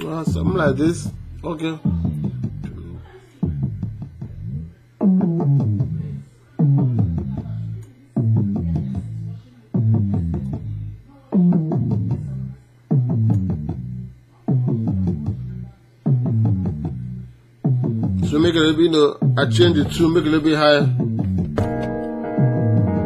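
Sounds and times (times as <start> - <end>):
descending music loop: 0.0 - 2.9, 3.5 - 9.1, 12.9 - 23.0.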